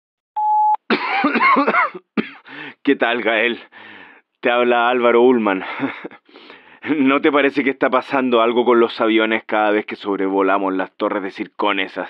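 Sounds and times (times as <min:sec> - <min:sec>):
short electronic beep: 0:00.4 - 0:00.8
man coughing: 0:00.9 - 0:02.8.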